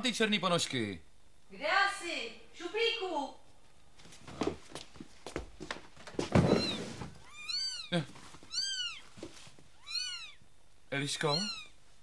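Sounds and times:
kittens mewing: 0:06.4 - 0:11.8.

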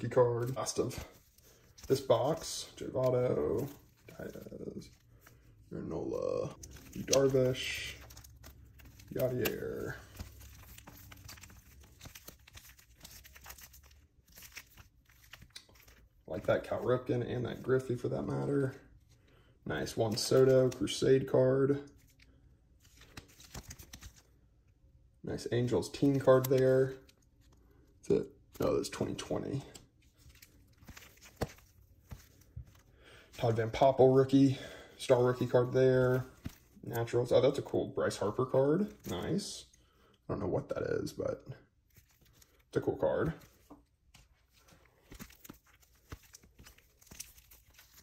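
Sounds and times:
plastic card sleeves crinkling: 0:00.0 - 0:24.6, 0:25.4 - 0:40.1, 0:41.7 - 0:48.0
cards clicking and tapping: 0:06.6 - 0:16.0, 0:30.2 - 0:32.8, 0:44.2 - 0:48.0.

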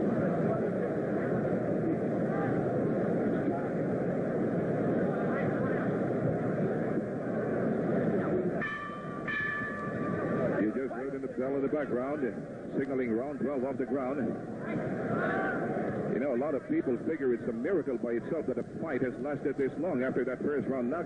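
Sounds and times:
arena crowd chatter: 0:00.0 - 0:21.0
boxing ring bell: 0:08.6 - 0:10.4.

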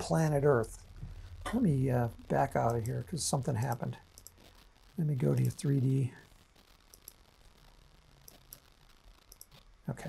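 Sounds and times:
computer mouse clicks: 0:03.7 - 0:04.5, 0:06.9 - 0:07.2, 0:09.3 - 0:09.7.

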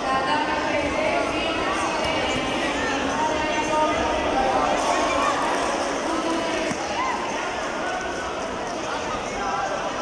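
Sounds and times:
crowd shouting and calling out: 0:00.0 - 0:10.0.

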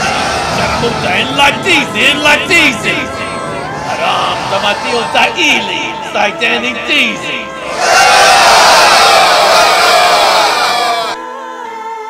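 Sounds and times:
crowd shouting and cheering: 0:00.0 - 0:11.2.

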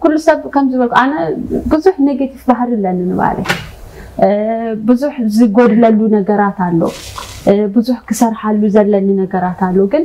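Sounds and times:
person talking: 0:04.2 - 0:10.0.

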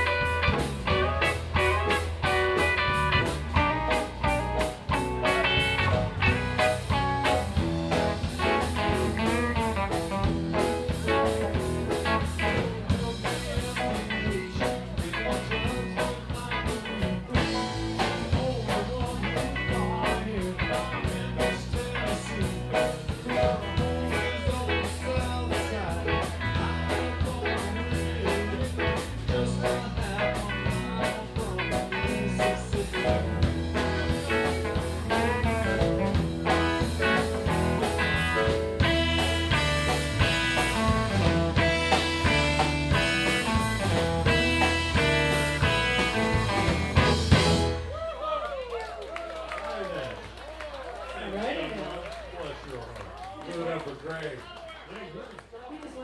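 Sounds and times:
keyboard: 0:00.0 - 0:47.9
drum kit: 0:00.0 - 0:48.1
electric guitar: 0:00.0 - 0:48.1
live blues-rock band: 0:00.0 - 0:48.1.

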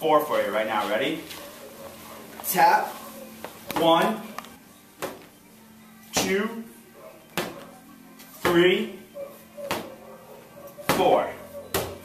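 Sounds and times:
medicine ball tapped on floor: 0:07.4 - 0:07.6, 0:09.7 - 0:09.9.

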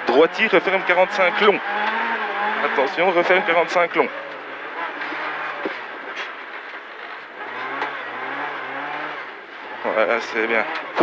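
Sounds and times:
rally car engine working hard: 0:00.0 - 0:11.0
tyre and road noise: 0:00.0 - 0:11.0.

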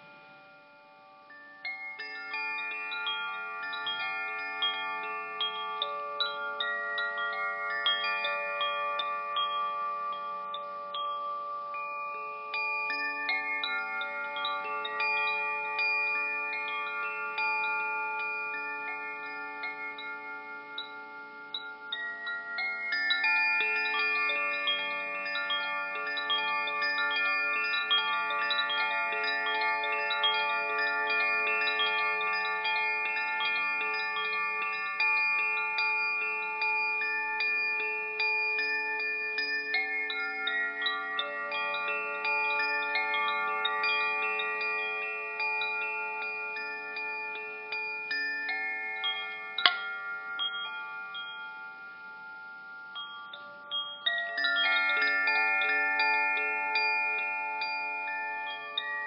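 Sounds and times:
wind chimes ringing: 0:00.0 - 0:59.0.

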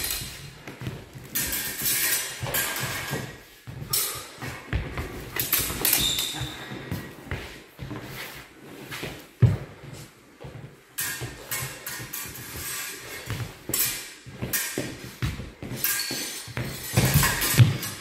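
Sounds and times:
swords clicking and clashing: 0:00.0 - 0:00.6, 0:01.2 - 0:04.4, 0:05.4 - 0:06.5, 0:11.0 - 0:15.0, 0:15.7 - 0:18.0
footfalls on hard floor: 0:00.0 - 0:18.0.

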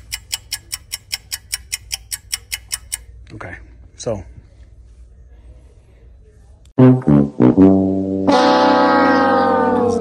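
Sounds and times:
sad trombone sound effect: 0:06.8 - 0:10.0.

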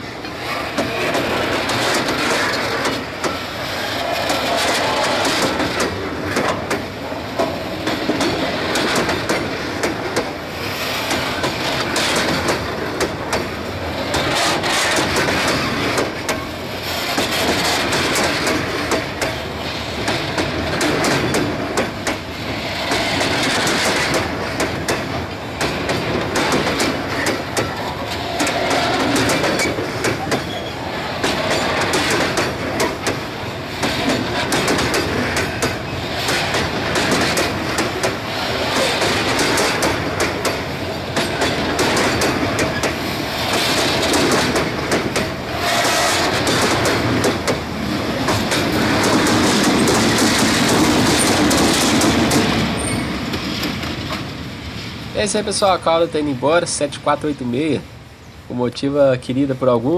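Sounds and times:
freight train wheels clattering: 0:00.0 - 0:55.9.

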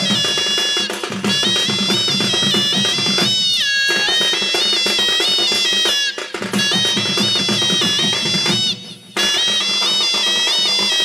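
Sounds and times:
fast drum rhythm: 0:00.0 - 0:11.0
shrill double-reed pipe melody: 0:00.0 - 0:11.0.

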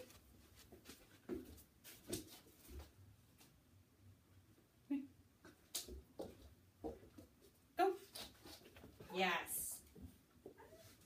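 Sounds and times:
dog paws tapping on carpet: 0:00.0 - 0:03.0, 0:05.4 - 0:09.1.

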